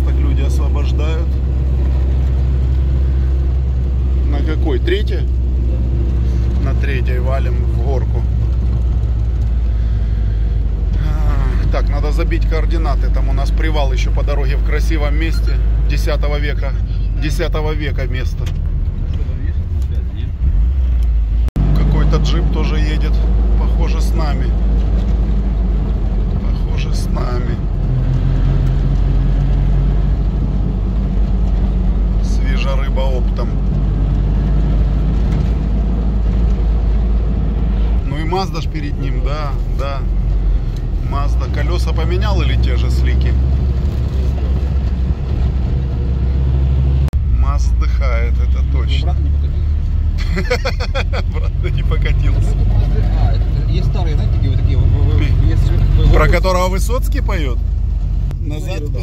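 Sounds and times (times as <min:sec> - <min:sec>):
vehicle engine and tyres droning: 0:00.0 - 0:59.0.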